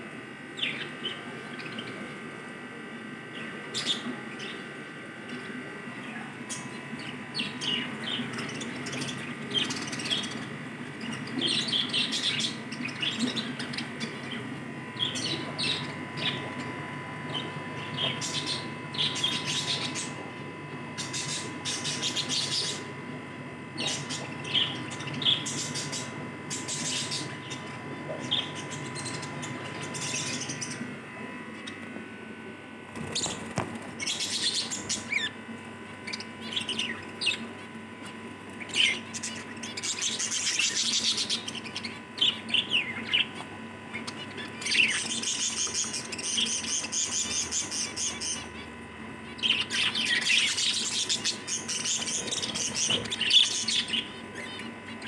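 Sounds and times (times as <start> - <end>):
small birds chirping: 0.3 - 55.0.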